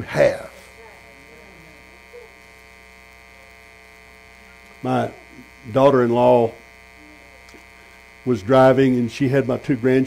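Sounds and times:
man speaking: 0.0s - 0.7s, 4.8s - 6.6s, 8.2s - 10.0s
faint murmur: 0.0s - 9.0s
electrical mains hum: 0.0s - 10.0s.

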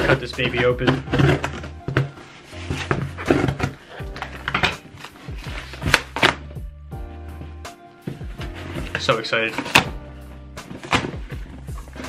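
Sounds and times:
background music with bass line: 0.0s - 12.0s
box cutter slicing packing tape: 4.5s - 6.4s.

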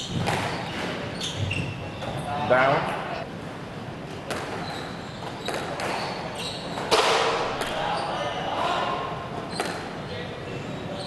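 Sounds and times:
squash ball strikes echoing: 0.0s - 1.0s, 4.2s - 6.2s, 6.8s - 7.8s, 9.5s - 9.9s.

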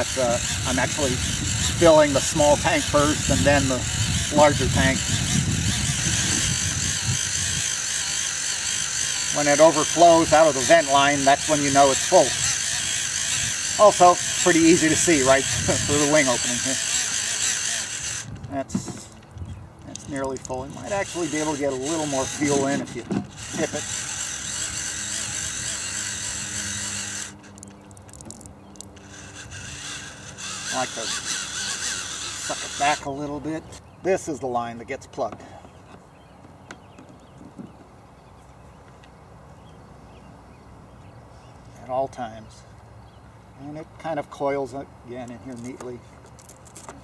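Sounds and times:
electric fuel pump running: 0.0s - 19.2s, 20.0s - 33.4s.

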